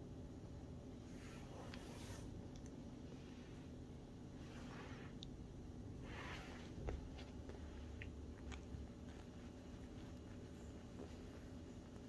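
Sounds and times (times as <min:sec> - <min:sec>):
rustling of fur and leather: 0:06.0 - 0:12.0.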